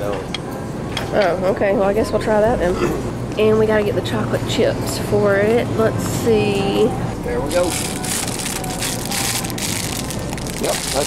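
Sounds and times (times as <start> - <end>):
plastic bag crinkling: 7.4 - 11.0.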